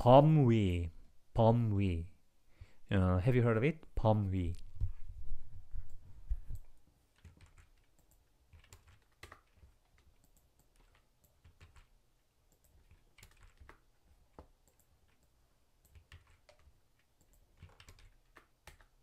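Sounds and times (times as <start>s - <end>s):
mouse clicking: 5.9s - 11.9s, 12.5s - 19.0s
typing on computer keyboard: 6.6s - 19.0s.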